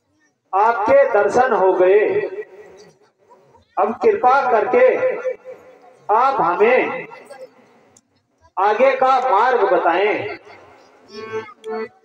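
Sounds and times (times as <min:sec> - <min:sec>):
man's voice over loudspeakers: 0:00.5 - 0:02.8, 0:03.8 - 0:07.3, 0:08.6 - 0:10.6
faint murmur: 0:02.5 - 0:04.0.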